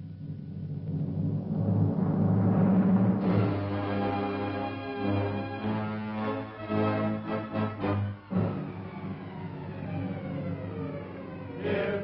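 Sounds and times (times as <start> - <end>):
low rumble: 0.0 - 4.5
brass title music: 1.8 - 9.8.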